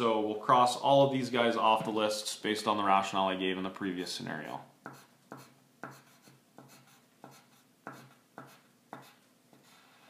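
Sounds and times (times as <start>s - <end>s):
pencil scratching on paper: 4.8s - 10.0s.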